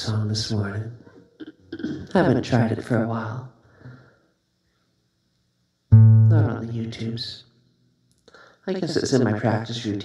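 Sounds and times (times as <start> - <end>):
low acoustic guitar note ringing: 5.9 - 6.8.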